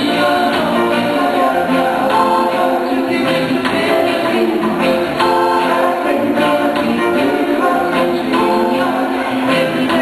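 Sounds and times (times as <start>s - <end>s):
choir-like sung notes: 0.0s - 10.0s
drums: 0.0s - 10.0s
live band playing: 0.0s - 10.0s.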